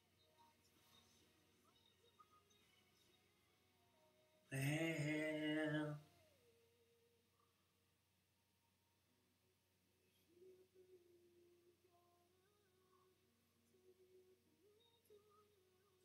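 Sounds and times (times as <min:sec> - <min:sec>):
faint background music: 0:00.0 - 0:16.0
man singing a held note: 0:04.5 - 0:06.4.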